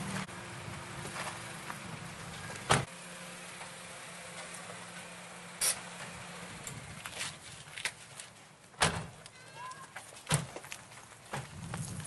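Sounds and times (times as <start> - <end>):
car door clunks: 2.6 - 2.9, 8.8 - 9.2.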